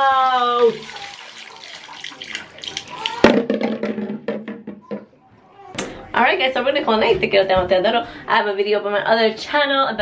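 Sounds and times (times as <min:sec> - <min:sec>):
liquid splashing in sink: 0:00.0 - 0:04.4.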